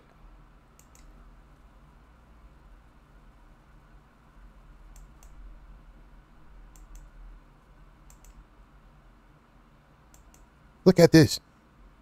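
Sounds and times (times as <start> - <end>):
low steady hum: 0.0 - 12.0
computer mouse clicks: 0.7 - 1.2, 4.9 - 5.4, 6.7 - 7.2, 8.0 - 8.4, 10.1 - 10.5.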